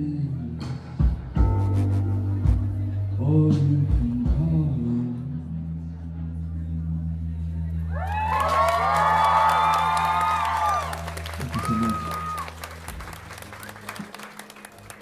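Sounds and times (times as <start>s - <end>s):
audience cheering and clapping: 7.9s - 15.0s.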